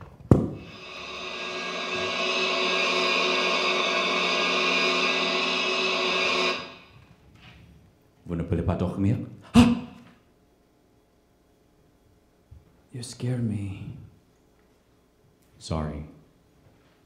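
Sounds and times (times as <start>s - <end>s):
electronic drone: 0.6s - 7.0s.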